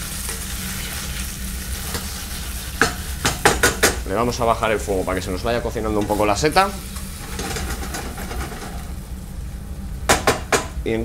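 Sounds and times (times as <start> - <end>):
frying pan hissing: 0.0 - 11.0
extractor hood humming: 3.8 - 11.0.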